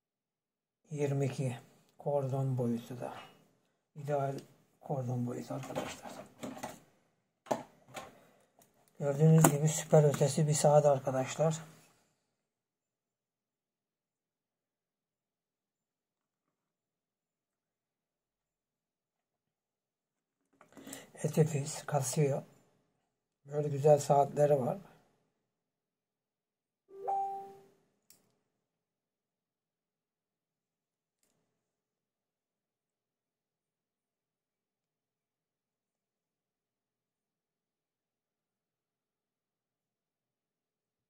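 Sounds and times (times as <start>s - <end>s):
single chime note: 27.0s - 27.6s.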